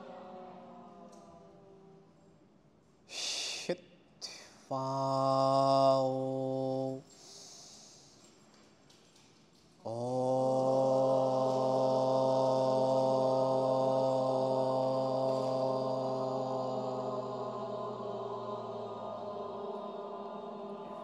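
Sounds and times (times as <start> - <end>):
person chanting om: 0.0 - 2.2, 3.1 - 8.2, 9.8 - 21.0
breath: 7.1 - 8.4.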